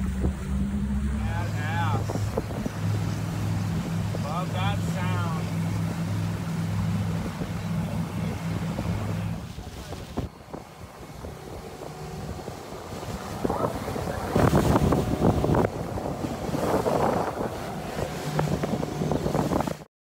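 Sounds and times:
motorboat engine drone: 0.0s - 19.9s
wind buffeting microphone: 0.0s - 19.9s.

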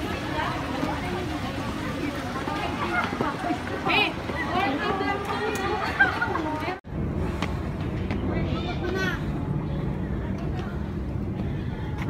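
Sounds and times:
footsteps on concrete steps: 2.4s - 8.3s
steady low rumble: 6.2s - 12.0s.

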